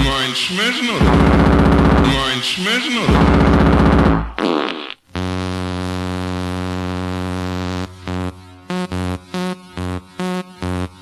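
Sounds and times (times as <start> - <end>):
fast distorted hardcore beats: 0.0 - 4.4
buzzing synth drone: 1.0 - 2.2, 5.2 - 11.0.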